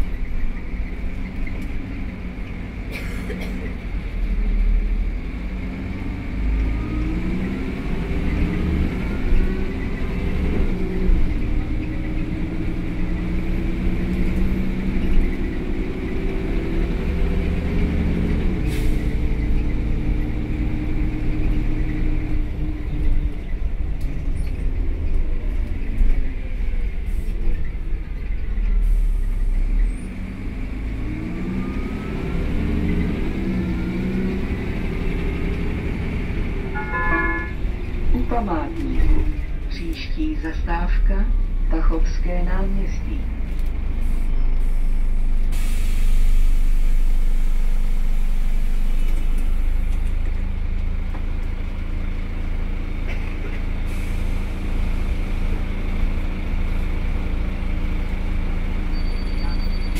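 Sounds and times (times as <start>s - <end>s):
bus engine drone: 0.0s - 59.9s.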